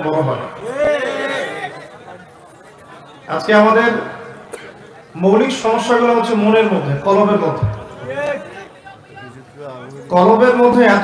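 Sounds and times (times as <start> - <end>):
man speaking into a microphone: 0.0 - 0.7, 3.3 - 4.3, 5.1 - 11.0
murmur of crowd chatter: 0.0 - 11.0.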